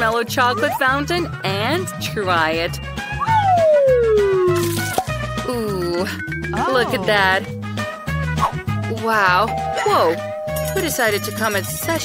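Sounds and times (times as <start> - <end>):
background music with steady beat: 0.0 - 12.0
falling whistle sound effect: 3.2 - 4.6.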